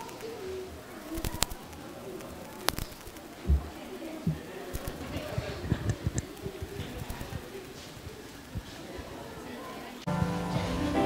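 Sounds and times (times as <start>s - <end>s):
faint low murmur: 0.0s - 11.0s
low thump: 3.5s - 3.7s.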